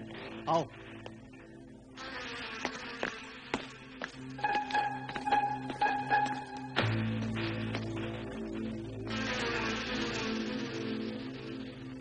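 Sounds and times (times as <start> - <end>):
buzzing hissing magic effect: 9.0 - 12.0.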